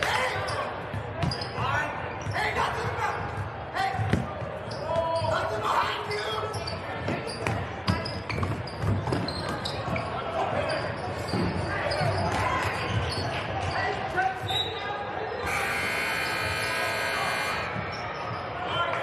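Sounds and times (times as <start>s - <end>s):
crowd chatter: 0.0s - 19.0s
electric gym buzzer blast: 15.4s - 17.8s.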